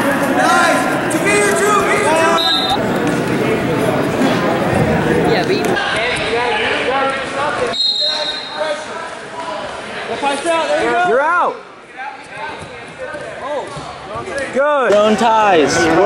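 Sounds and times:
people talking: 0.0 - 16.0.

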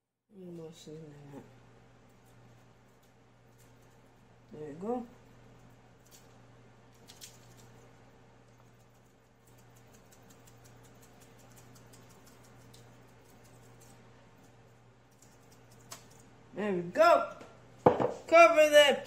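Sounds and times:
seasoning shaker pattering: 1.4 - 16.4.

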